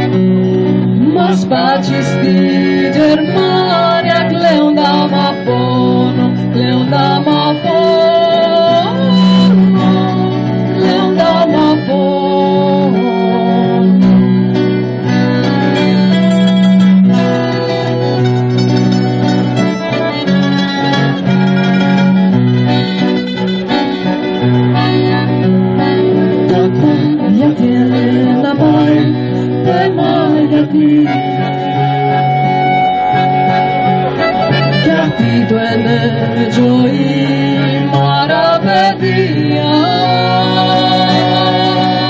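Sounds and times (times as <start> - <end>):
accordion: 0.0 - 42.0
acoustic guitar: 0.0 - 42.0.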